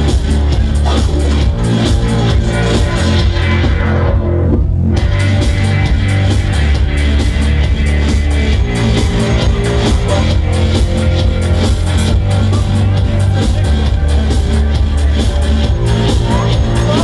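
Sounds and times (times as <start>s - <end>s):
electronic dance music: 0.0s - 17.0s.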